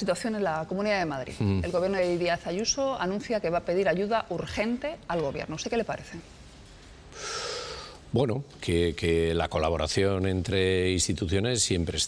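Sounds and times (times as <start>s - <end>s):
person breathing in: 7.1s - 8.0s.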